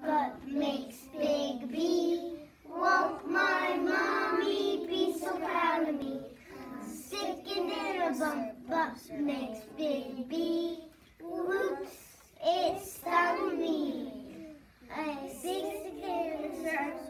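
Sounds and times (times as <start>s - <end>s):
child singing: 0.0s - 17.0s.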